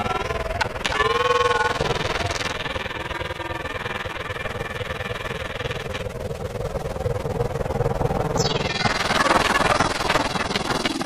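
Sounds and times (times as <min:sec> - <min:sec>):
steady hum: 0:00.0 - 0:11.0
warbling pitched tone: 0:00.0 - 0:11.0.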